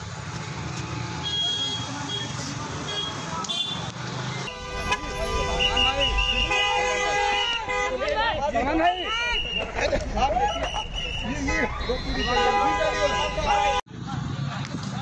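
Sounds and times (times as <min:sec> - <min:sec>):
crowd of voices: 0:01.7 - 0:15.0
car horn honking: 0:04.5 - 0:09.4, 0:11.1 - 0:13.8.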